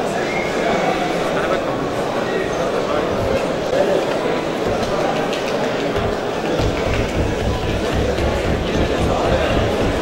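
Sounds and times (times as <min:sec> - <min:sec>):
audience voices in a large hall: 0:00.0 - 0:10.0
low thuds: 0:06.0 - 0:10.0.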